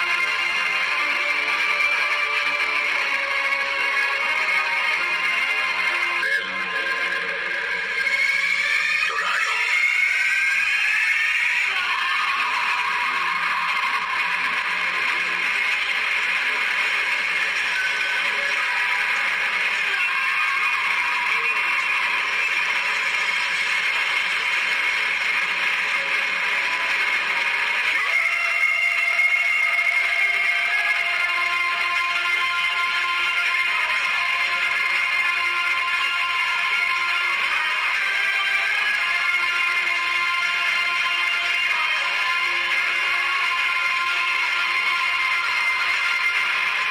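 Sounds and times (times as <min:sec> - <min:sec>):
dramatic film score through tv speaker: 0:00.0 - 0:46.9.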